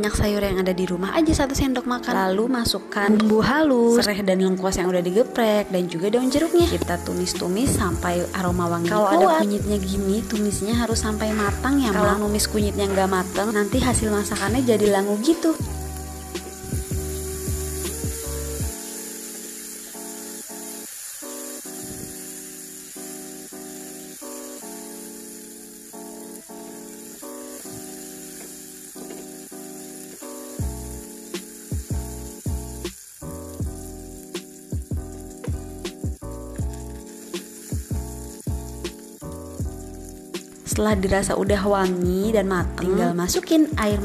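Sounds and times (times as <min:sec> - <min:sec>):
background music melody: 0:00.0 - 0:44.0
paste sizzling in oil: 0:06.0 - 0:43.8.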